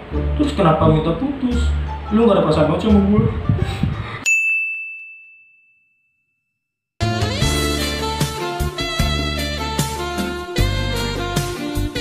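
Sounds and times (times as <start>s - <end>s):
high bell-like ding: 4.2s - 6.6s.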